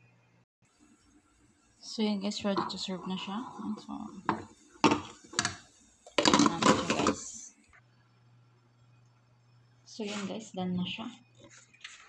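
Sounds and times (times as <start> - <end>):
oven humming: 1.0 - 12.0.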